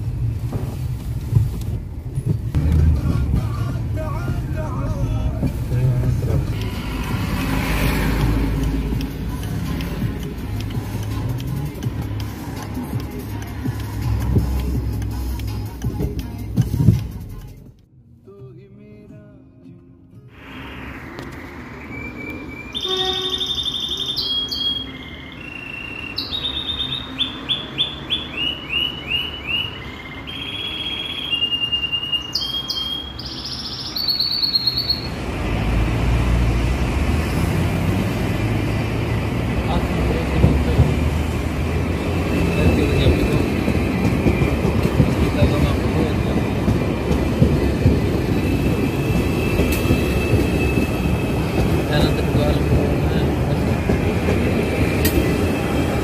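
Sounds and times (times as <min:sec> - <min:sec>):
electric train approaching: 0:02.3 - 0:11.0, 0:20.4 - 0:56.0
bird singing: 0:21.4 - 0:35.2.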